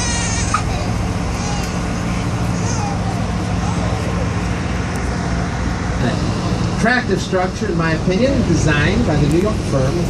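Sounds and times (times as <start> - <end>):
boat engine drone: 0.0 - 10.0
faint voices: 0.6 - 5.0.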